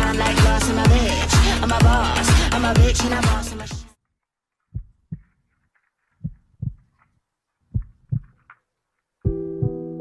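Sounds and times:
heartbeat double thumps: 4.7s - 5.4s, 6.2s - 7.0s, 7.7s - 8.4s, 9.3s - 9.9s.

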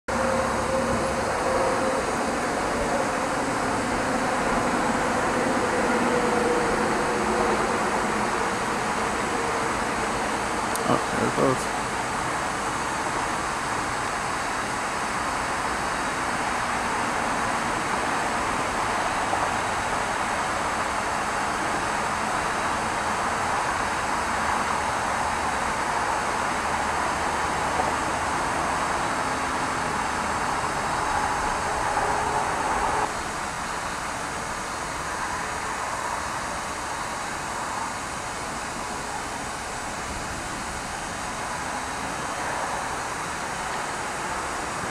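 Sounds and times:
steady rushing noise: 0.1s - 44.9s.

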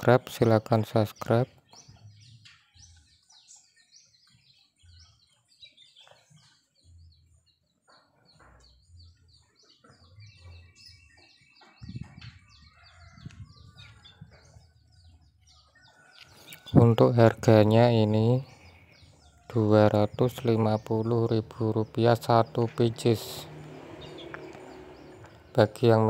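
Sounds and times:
small birds chirping: 0.0s - 26.0s
soft low bumps: 11.6s - 14.9s.

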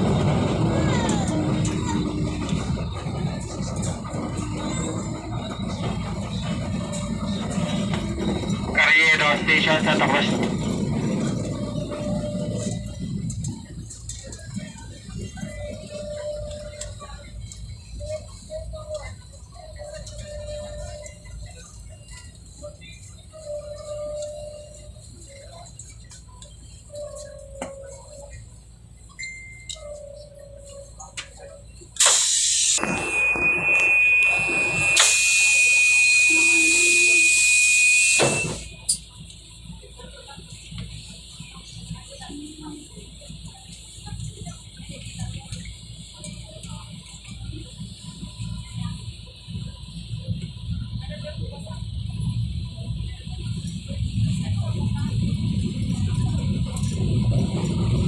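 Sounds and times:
train low rumble: 0.0s - 58.0s
loud air hiss: 32.0s - 32.8s
steady high-pitched beep: 32.8s - 39.0s.

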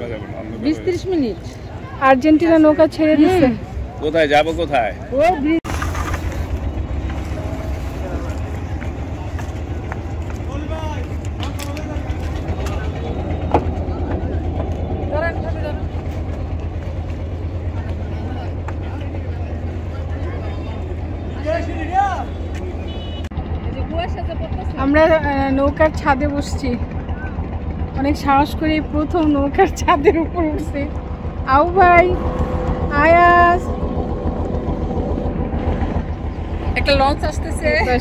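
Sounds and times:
boat engine idling: 0.0s - 38.0s
people talking: 23.7s - 26.9s, 28.0s - 32.2s, 32.8s - 33.7s, 36.6s - 38.0s.

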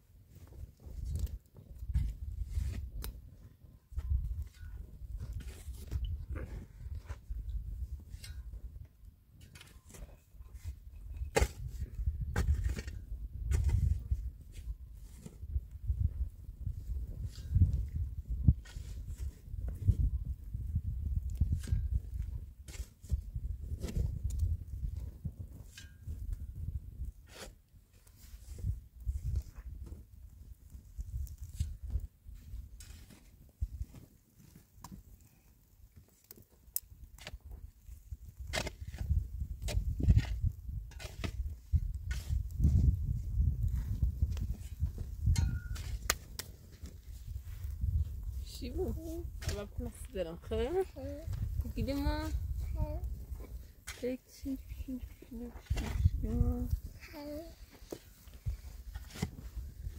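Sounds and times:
mattock digging stony earth: 0.3s - 59.9s
low gusting rumble: 56.0s - 57.0s.

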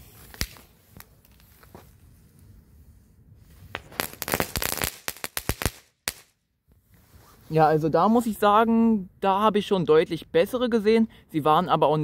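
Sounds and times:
firework crackling pops: 0.0s - 2.0s, 3.5s - 6.4s.

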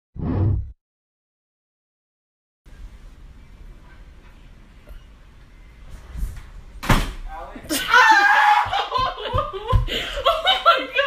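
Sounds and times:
door shutting with a thud: 6.8s - 7.3s.

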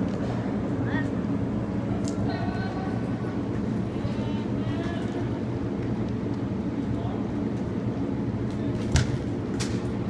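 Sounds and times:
low rumble of indoor hall: 0.0s - 10.0s.

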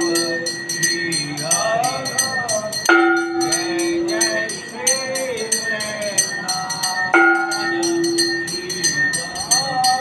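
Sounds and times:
bells or cymbals striking: 0.0s - 10.0s
sustained steady tone: 0.0s - 10.0s
voices singing: 0.0s - 10.0s.

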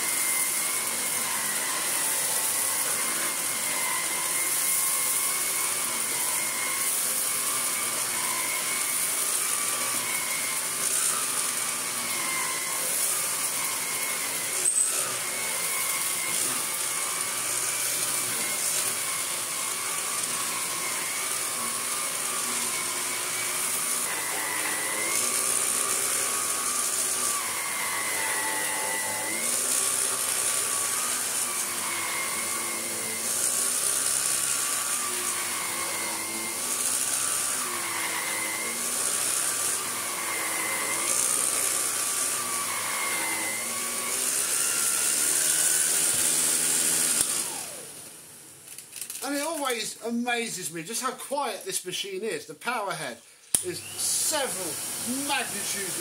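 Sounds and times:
vacuum cleaner motor whine: 0.0s - 50.2s, 53.3s - 56.0s.

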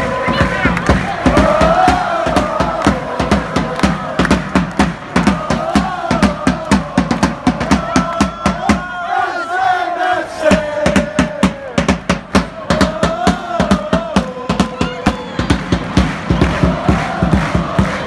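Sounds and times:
bass drum beating: 0.0s - 8.9s, 10.5s - 18.0s
crowd chanting: 0.0s - 18.0s.

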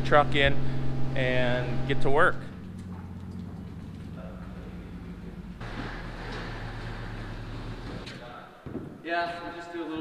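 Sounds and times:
truck engine running: 0.0s - 8.1s.

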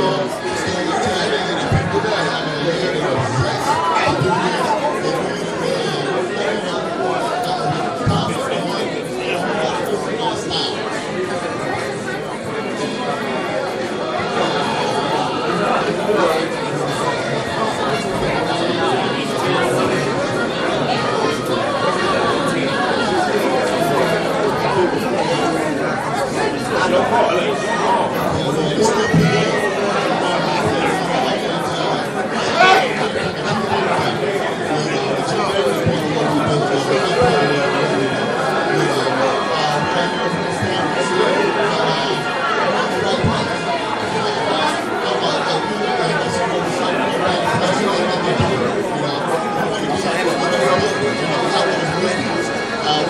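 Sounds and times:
busy chatter of voices: 0.0s - 53.0s.

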